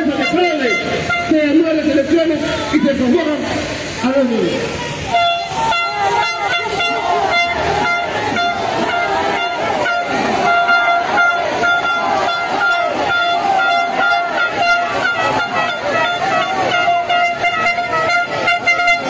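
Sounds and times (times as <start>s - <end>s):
crowd din: 0.0s - 19.0s
horn held on one note: 5.1s - 19.0s.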